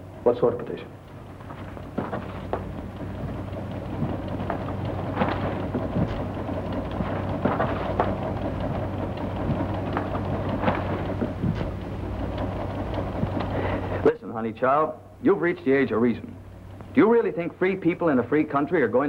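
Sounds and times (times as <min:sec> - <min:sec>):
constant low hum: 0:00.0 - 0:19.0.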